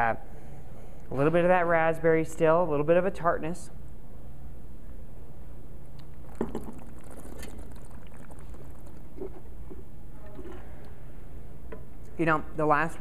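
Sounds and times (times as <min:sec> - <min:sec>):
steady low hum: 0:00.0 - 0:12.9
faint slurps and mouth sounds: 0:05.9 - 0:10.7.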